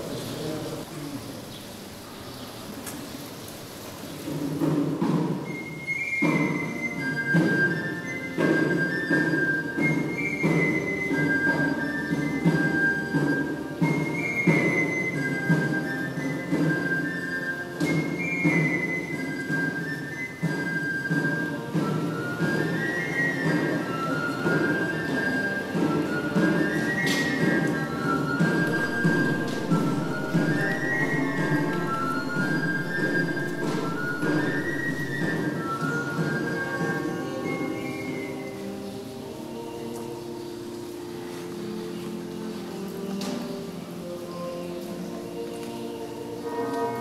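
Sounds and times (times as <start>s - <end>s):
pipe organ playing: 5.5s - 47.0s.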